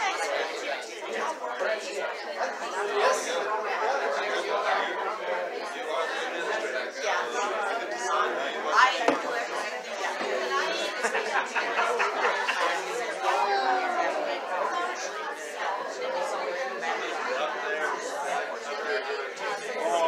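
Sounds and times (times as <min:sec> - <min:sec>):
indistinct chatter: 0:00.0 - 0:20.0.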